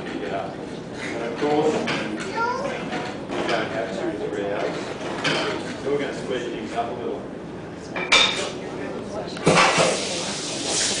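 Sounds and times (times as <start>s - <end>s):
hot metal hissing in water: 9.5s - 11.0s.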